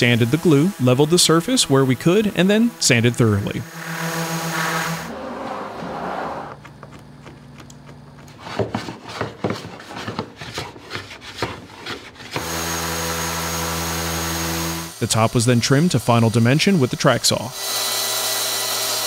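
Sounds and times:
orbital sander humming: 0.0 - 8.8, 12.3 - 19.0.

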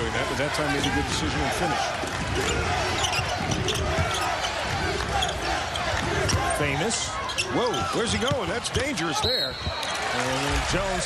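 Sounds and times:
arena crowd noise: 0.0 - 11.0
sneaker squeaks: 3.0 - 4.4, 5.2 - 8.5, 9.2 - 10.2.

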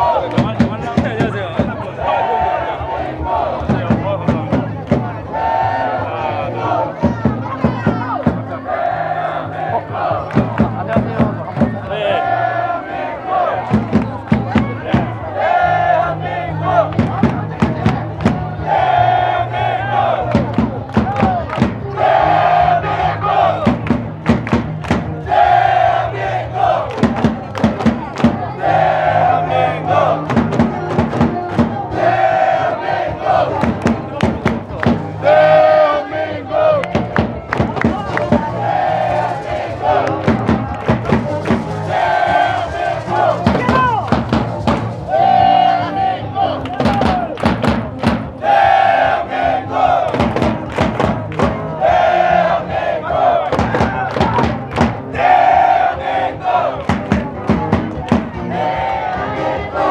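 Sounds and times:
bass drum beat: 0.0 - 59.9
crowd chanting in unison: 0.0 - 59.9.

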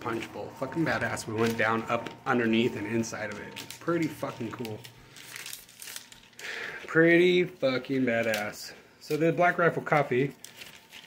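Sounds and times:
rustling and crinkling: 0.1 - 11.0.

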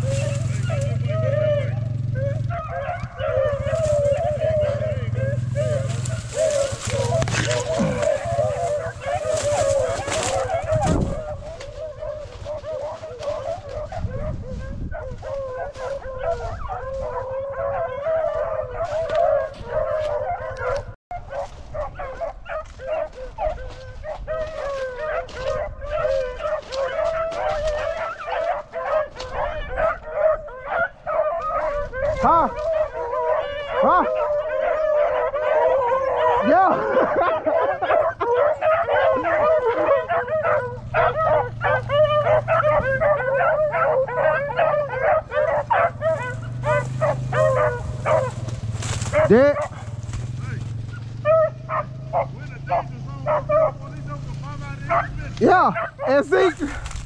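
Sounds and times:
dogs baying and howling: 0.0 - 57.0
wind rumble on microphone: 1.8 - 28.0, 28.6 - 33.8.

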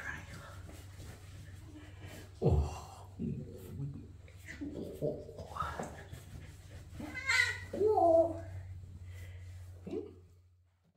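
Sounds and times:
towel rubbing: 0.0 - 2.4, 4.4 - 9.8.

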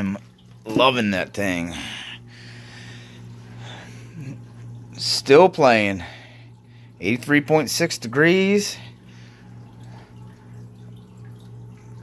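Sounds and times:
aquarium equipment hum: 0.0 - 12.0.

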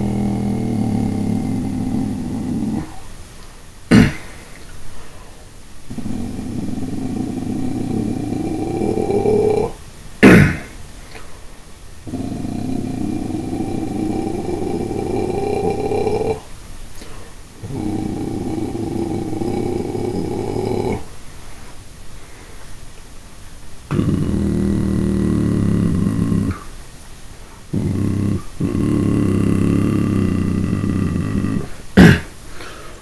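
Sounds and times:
low growled vocal notes: 0.0 - 3.1, 5.9 - 10.7, 12.0 - 16.5, 17.6 - 21.1, 23.9 - 26.7, 27.7 - 32.3.

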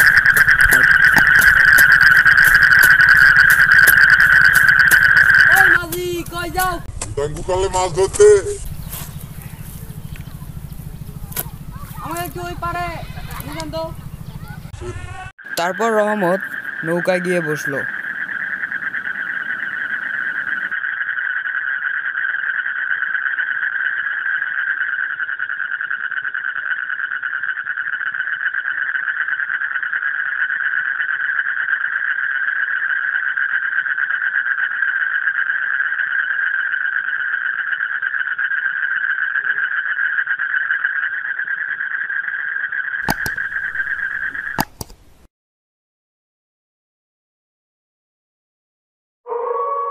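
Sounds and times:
high-pitched trilling drone: 0.0 - 6.9, 7.6 - 14.7
sharp mouse-like clicks: 43.0 - 45.0.

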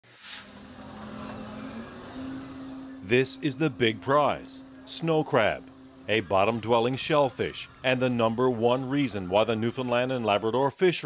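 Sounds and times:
brief hiss: 0.0 - 0.6
low machinery hum: 0.4 - 10.7.

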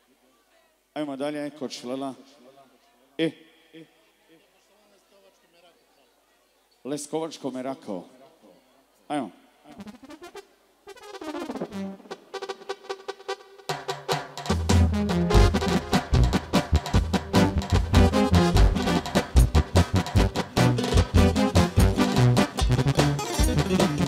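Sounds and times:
brass-led dance band music: 9.7 - 24.0
drums and bass beat: 11.0 - 24.0.

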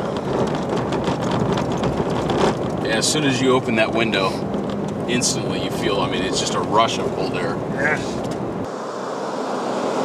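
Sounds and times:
road and wind noise in car: 0.0 - 10.0.

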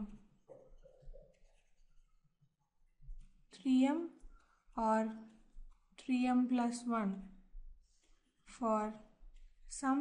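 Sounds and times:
stylus scratching on tablet: 0.2 - 2.2.

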